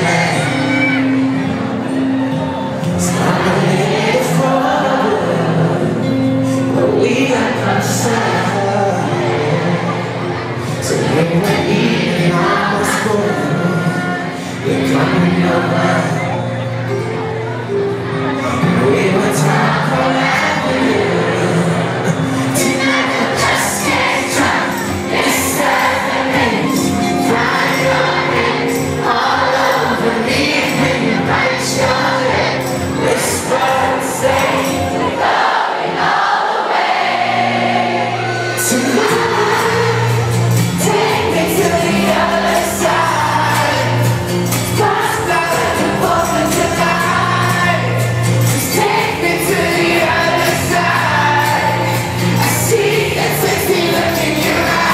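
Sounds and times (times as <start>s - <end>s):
live pop concert music: 0.0s - 54.9s
voices singing held notes: 0.0s - 54.9s.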